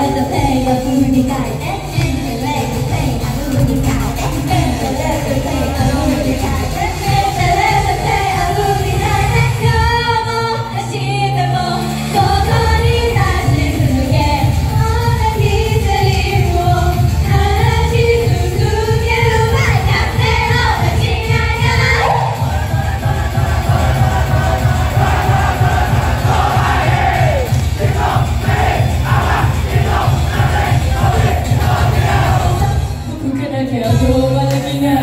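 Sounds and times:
pop song through loudspeakers: 0.0 - 35.0
drum beat: 19.0 - 32.8
crowd shouting along: 21.8 - 32.8.

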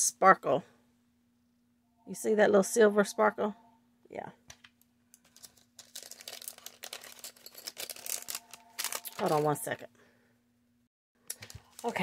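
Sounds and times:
plastic bag crinkling: 5.2 - 9.8, 11.3 - 12.0.

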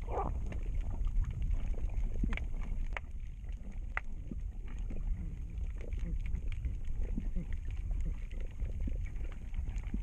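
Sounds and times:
underwater rumble of water: 0.0 - 10.0.

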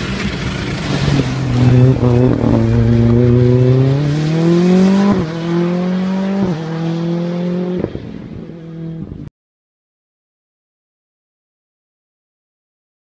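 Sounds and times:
rally car engine accelerating: 0.0 - 9.2.

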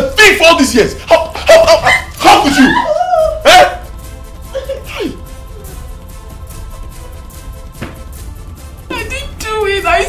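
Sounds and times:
soundtrack music with held note: 0.0 - 10.0
person shouting a cry: 1.9 - 3.8.

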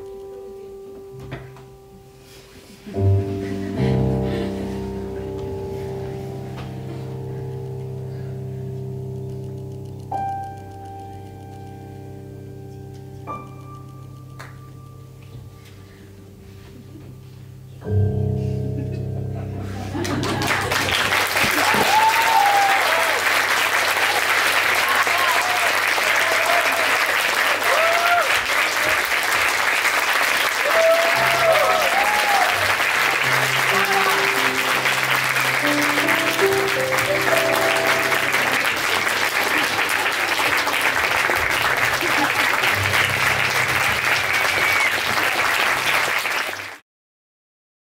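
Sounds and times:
music playing: 1.5 - 21.9, 30.7 - 45.9
audience applauding: 19.9 - 46.8
cheering shouts and whoops: 21.5 - 23.3, 24.8 - 28.5, 30.6 - 32.8.

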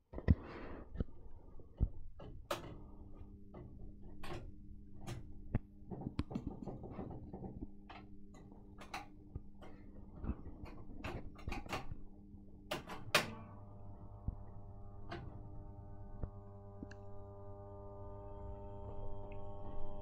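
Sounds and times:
irregular clicks and knocks: 1.8 - 13.4
tape recorder motor humming: 13.1 - 20.0.

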